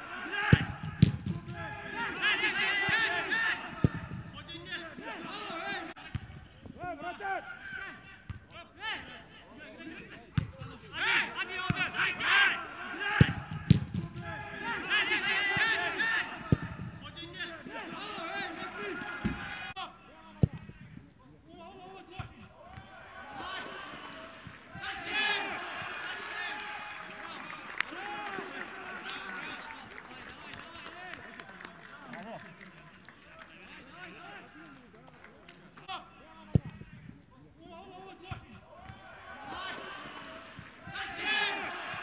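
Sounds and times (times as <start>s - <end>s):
people shouting and calling out: 0.0s - 6.2s, 6.8s - 27.0s, 35.8s - 42.0s
voices: 0.0s - 42.0s
football kick thumps: 0.5s - 1.7s, 13.2s - 14.3s, 20.4s - 21.0s.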